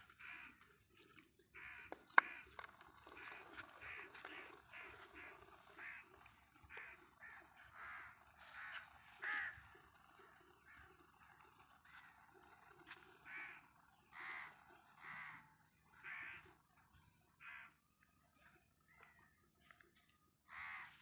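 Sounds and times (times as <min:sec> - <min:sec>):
faint bird calls: 0:00.0 - 0:21.0.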